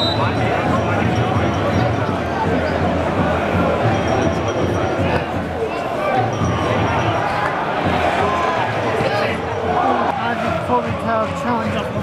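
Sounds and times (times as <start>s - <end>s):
crowd shouting and singing: 0.0s - 12.0s.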